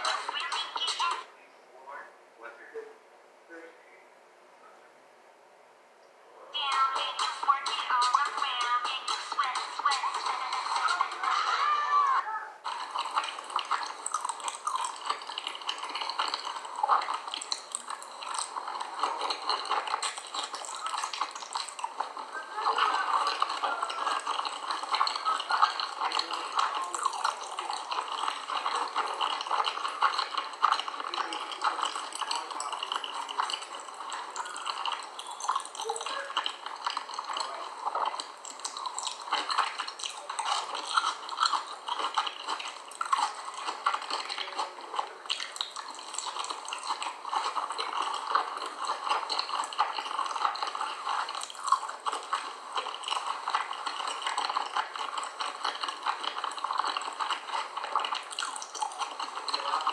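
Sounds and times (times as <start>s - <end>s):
mouth chewing crunchy powder: 0.0s - 1.3s, 6.6s - 11.9s, 12.6s - 59.9s.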